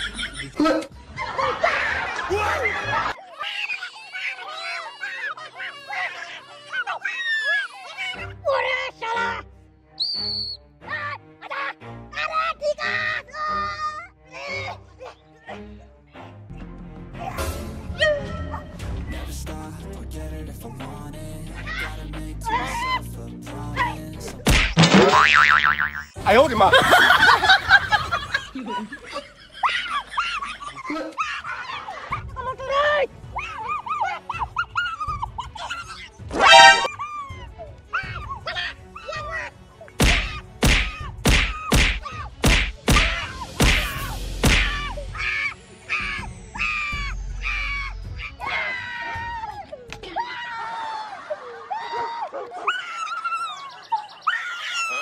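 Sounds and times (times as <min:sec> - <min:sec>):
sharp smack: 0:24.5 - 0:25.2, 0:40.0 - 0:44.8
cartoon boing sound effect: 0:24.8 - 0:26.2, 0:36.4 - 0:36.9
repeated screams: 0:42.9 - 0:55.0.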